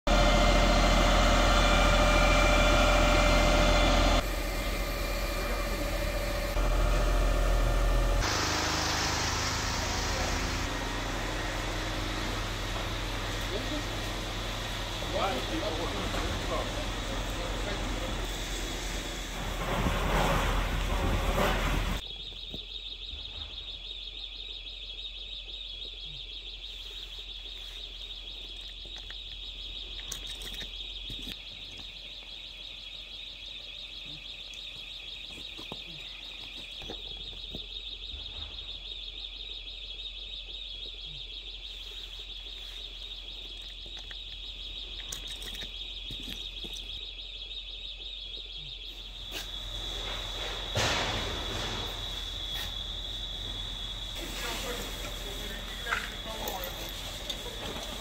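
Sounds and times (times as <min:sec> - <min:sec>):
trilling electronic alarm tone: 0:00.1 - 0:58.0.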